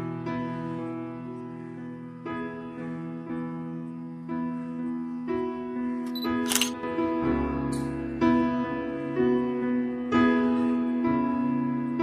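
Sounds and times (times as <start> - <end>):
soft piano music: 0.0 - 12.0
phone camera shutter click: 6.1 - 6.8.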